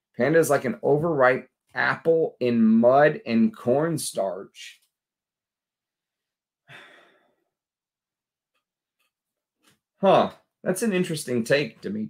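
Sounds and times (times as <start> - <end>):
man sniffing: 6.7 - 7.4.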